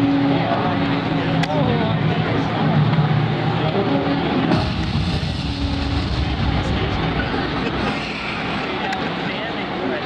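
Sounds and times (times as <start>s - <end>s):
music over sound system: 0.0s - 8.8s
heavy low rumble: 0.0s - 9.3s.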